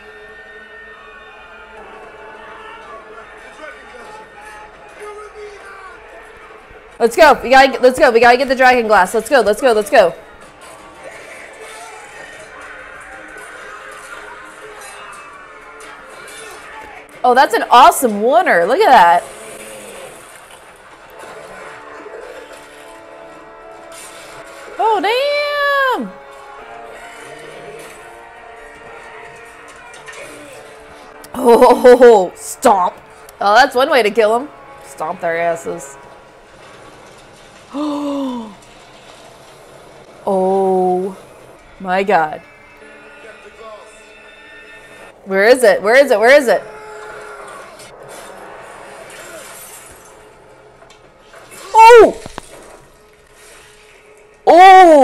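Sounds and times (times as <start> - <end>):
loud drawn-out cry: 51.7 - 52.3.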